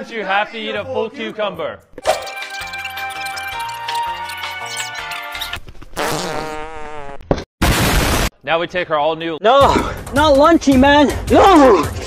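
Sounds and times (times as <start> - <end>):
background music: 0.0 - 5.6, 9.4 - 12.0
explosion sound effect: 7.6 - 8.3.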